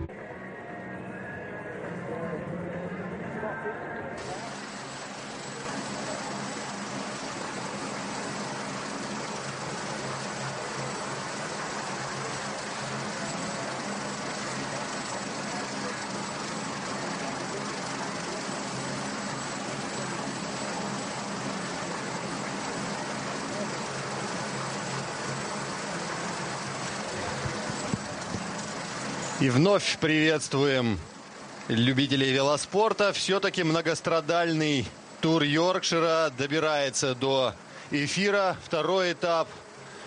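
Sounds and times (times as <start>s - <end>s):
helicopter engine and rotor noise: 4.2s - 40.0s.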